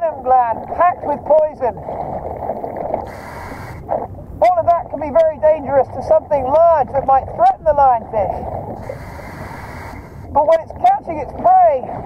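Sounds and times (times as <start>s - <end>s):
diver breathing through regulator: 1.8s - 4.1s, 8.4s - 10.4s.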